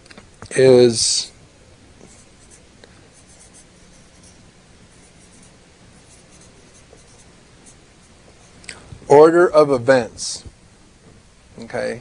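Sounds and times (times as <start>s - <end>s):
marker pen scratching: 3.2s - 7.8s.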